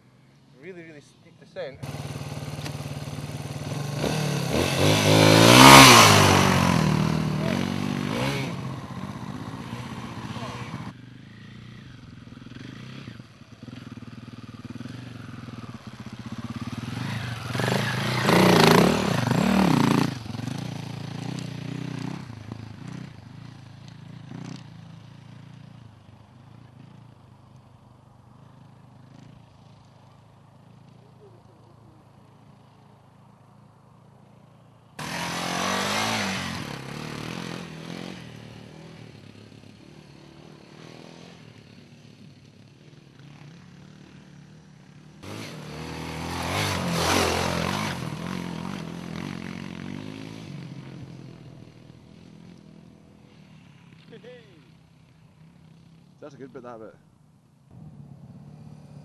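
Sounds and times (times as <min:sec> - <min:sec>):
motorcycles riding past: 0:00.0 - 0:59.0.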